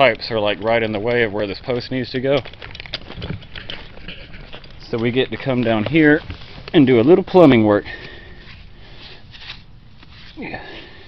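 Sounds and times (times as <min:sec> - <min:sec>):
hand rustling grass and soil: 0:03.8 - 0:11.0.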